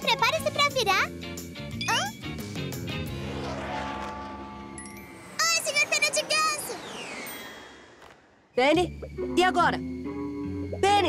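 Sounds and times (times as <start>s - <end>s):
falling whistle-like glide: 3.1s - 8.6s.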